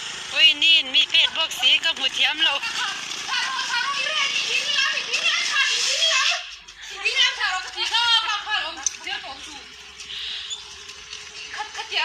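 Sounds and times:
people laughing: 10.1 - 10.6.

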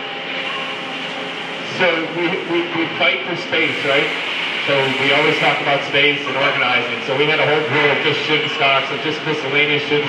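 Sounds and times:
factory machinery humming: 0.0 - 10.0
man talking: 1.7 - 10.0.

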